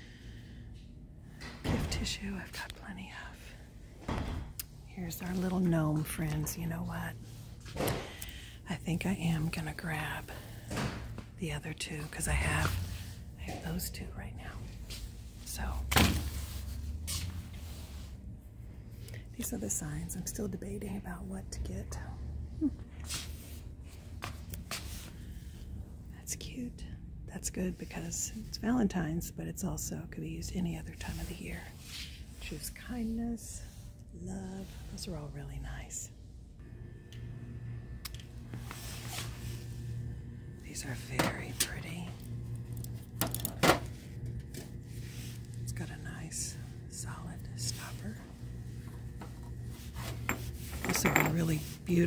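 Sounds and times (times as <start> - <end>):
low steady hum: 0.0 - 52.0
rustling and scraping handling noises: 38.4 - 39.9, 47.8 - 52.0.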